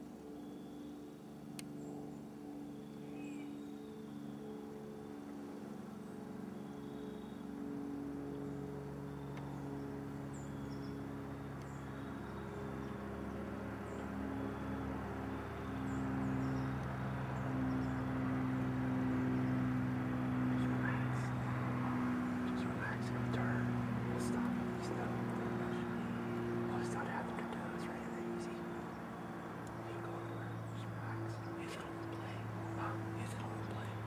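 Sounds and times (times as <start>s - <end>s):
distant engine droning: 0.0s - 34.0s.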